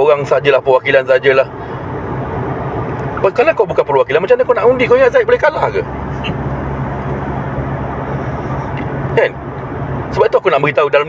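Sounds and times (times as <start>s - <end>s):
car engine hum: 0.0s - 11.0s.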